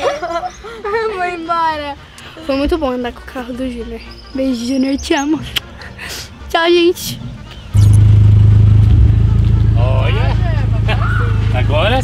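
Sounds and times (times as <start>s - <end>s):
vehicle engine droning: 7.7s - 12.0s.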